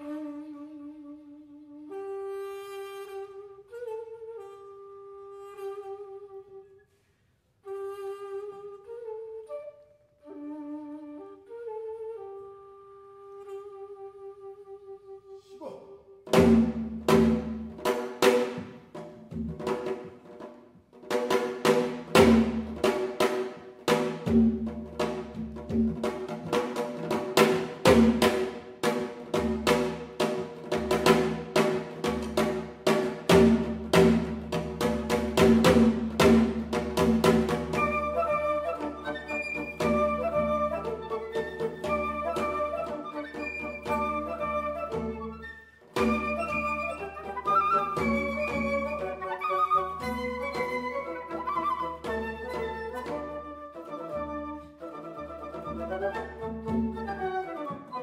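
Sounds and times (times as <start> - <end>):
flutes playing: 0.0 - 17.7, 35.8 - 58.0.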